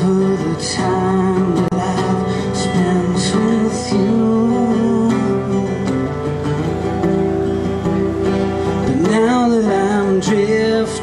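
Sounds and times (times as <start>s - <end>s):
man singing: 0.0s - 5.9s, 8.8s - 11.0s
acoustic guitar: 0.0s - 11.0s.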